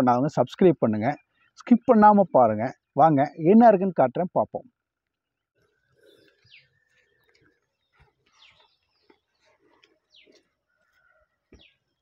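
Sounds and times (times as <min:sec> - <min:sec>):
man's voice: 0:00.0 - 0:04.6
faint bird chirps: 0:05.6 - 0:12.0.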